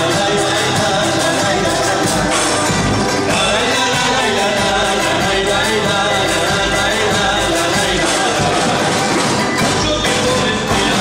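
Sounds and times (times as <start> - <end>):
folk group playing: 0.0 - 11.0
percussion and drums: 0.0 - 11.0.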